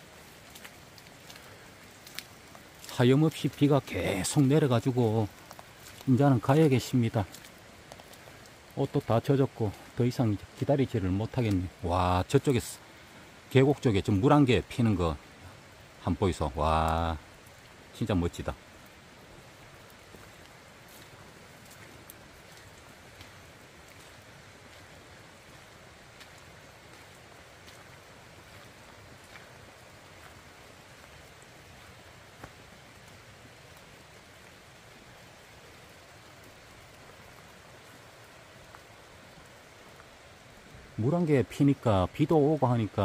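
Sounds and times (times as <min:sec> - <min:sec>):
steady rain falling: 0:00.0 - 0:43.0
raindrops tapping on surfaces: 0:00.1 - 0:12.8, 0:15.9 - 0:43.0.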